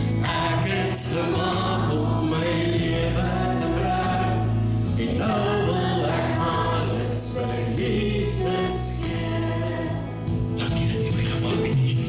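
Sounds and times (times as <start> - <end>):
group singing worship song: 0.0 - 10.7
instrumental backing: 0.0 - 12.0.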